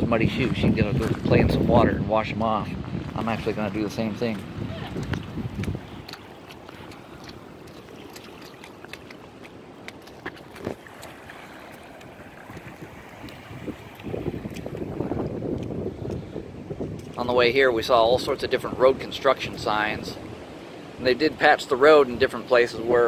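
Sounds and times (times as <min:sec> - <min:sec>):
wind buffeting microphone: 0:00.0 - 0:21.0
footsteps on wet asphalt: 0:00.4 - 0:01.4, 0:02.8 - 0:17.2
water lapping: 0:03.2 - 0:17.2.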